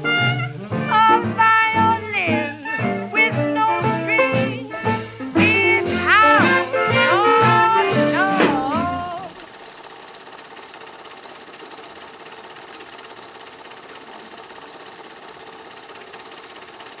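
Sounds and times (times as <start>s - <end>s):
swing music: 0.0s - 9.4s
fast mechanical rattle: 6.1s - 17.0s.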